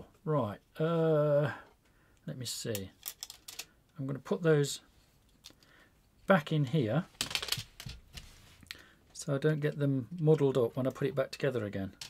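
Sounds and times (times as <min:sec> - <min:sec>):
plastic clicks and rattles: 0:02.8 - 0:03.7.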